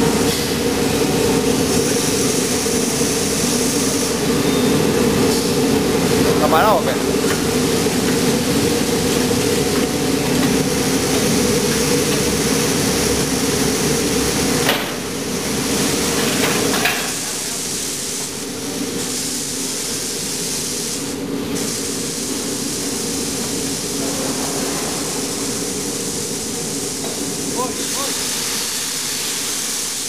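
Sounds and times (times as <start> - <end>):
spray and steam hissing: 0.0 - 30.0.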